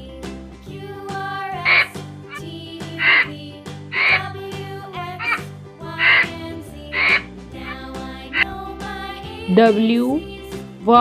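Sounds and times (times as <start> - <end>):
light children's music: 0.0 - 11.0
rasping vulture calls: 1.6 - 2.4, 3.0 - 3.3, 4.0 - 4.4, 5.2 - 7.8.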